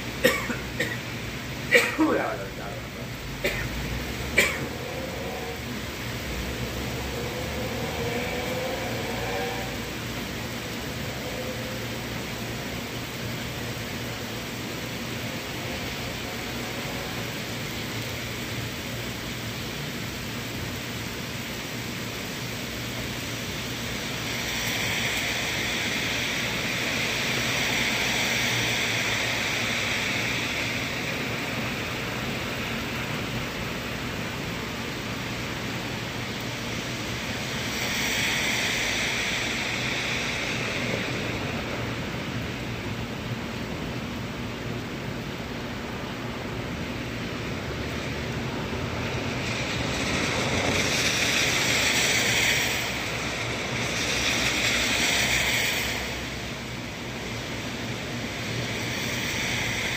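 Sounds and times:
steady rain falling: 0.0 - 59.9.

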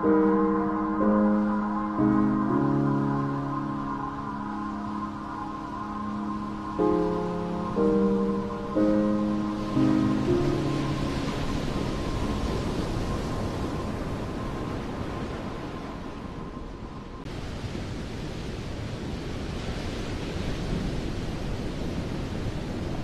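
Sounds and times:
piano notes: 0.0 - 13.1
faint held high tone: 0.0 - 13.5.

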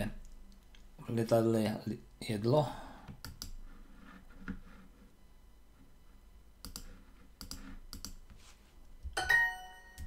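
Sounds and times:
computer mouse clicks: 3.1 - 3.6, 6.6 - 8.2.

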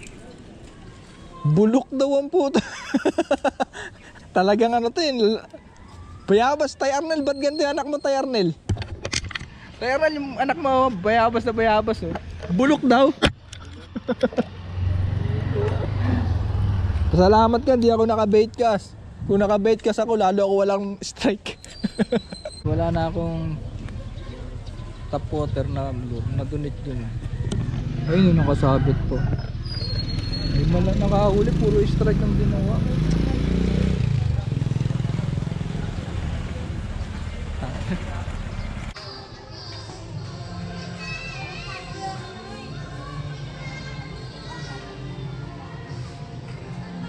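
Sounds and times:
vehicle engine droning: 13.3 - 19.4, 22.3 - 39.0.

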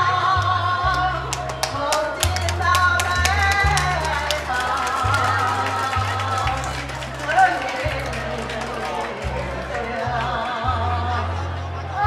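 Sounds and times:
woman singing into microphone: 0.0 - 11.3
karaoke backing track: 0.0 - 12.0
low bass line: 0.0 - 12.0.

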